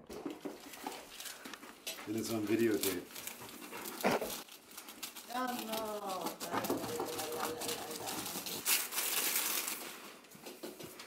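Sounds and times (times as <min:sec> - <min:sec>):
wrapping paper rustling: 0:00.4 - 0:10.6.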